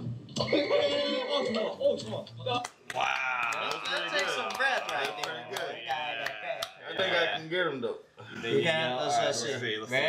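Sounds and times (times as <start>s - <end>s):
sharp hand claps: 2.6s - 6.8s.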